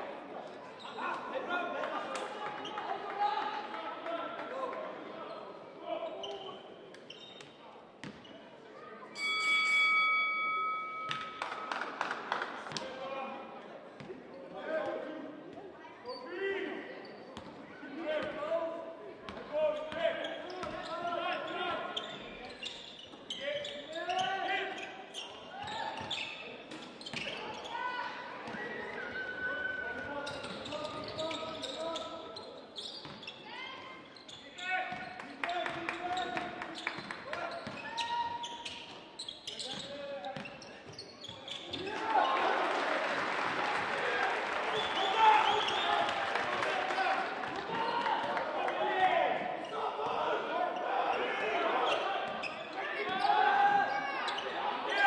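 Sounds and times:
sneakers squeaking: 6.2s - 8.4s, 9.2s - 11.5s, 19.3s - 27.8s, 28.4s - 42.1s, 49.4s - 54.6s.

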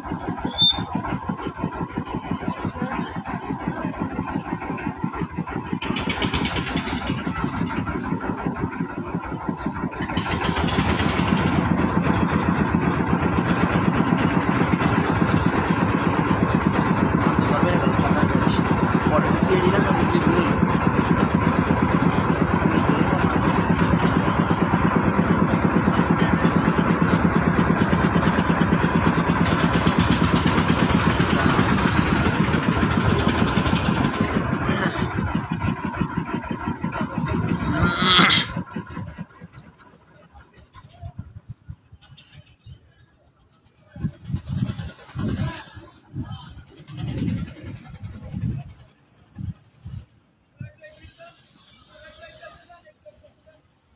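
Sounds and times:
boat diesel engine chugging: 0.0s - 53.9s.

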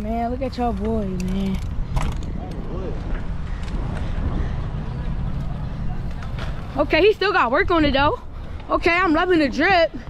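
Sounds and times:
bicycle rolling and rattling: 0.0s - 10.0s
wind rumbling on microphone: 0.0s - 10.0s.

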